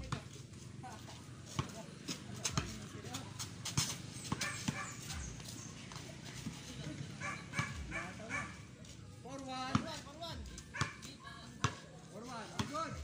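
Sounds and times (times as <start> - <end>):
basketball bouncing on dirt: 0.0 - 0.4, 1.4 - 6.6, 9.6 - 13.0
dog barking: 4.4 - 5.0, 7.2 - 8.6, 10.7 - 11.0.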